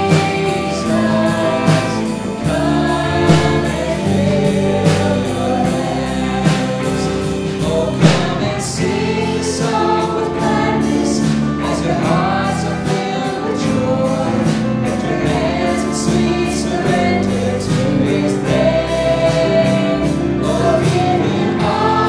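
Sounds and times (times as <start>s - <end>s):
electric bass: 0.0s - 22.0s
piano: 0.0s - 22.0s
voices singing together: 0.0s - 22.0s
drum and cymbal strikes: 1.6s - 11.6s.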